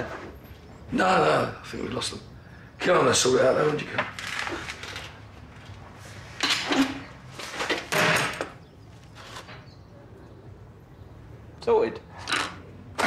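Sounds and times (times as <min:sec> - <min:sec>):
lock scraping and clunking: 0:06.3 - 0:08.6.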